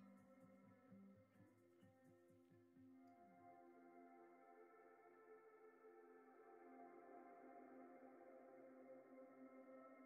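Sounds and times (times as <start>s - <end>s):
soft ambient music: 0.0s - 10.0s.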